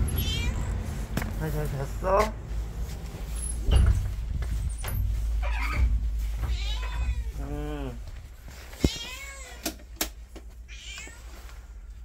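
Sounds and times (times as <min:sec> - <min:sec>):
cat meowing: 0:00.1 - 0:00.8, 0:06.4 - 0:07.7, 0:08.8 - 0:09.7, 0:10.7 - 0:11.3.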